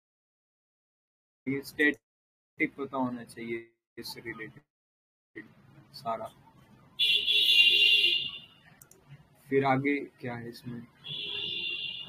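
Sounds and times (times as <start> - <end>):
shrill high-pitched buzzer tone: 11.0 - 12.0.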